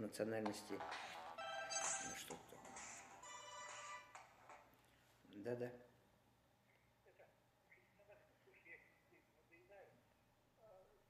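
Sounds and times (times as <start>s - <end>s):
mobile phone ringtone: 0.8s - 4.2s.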